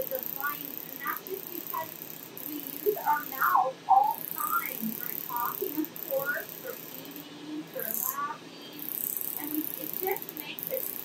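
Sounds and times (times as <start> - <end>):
faint high-pitched hiss: 0.0 - 11.0
indistinct talking: 0.0 - 11.0.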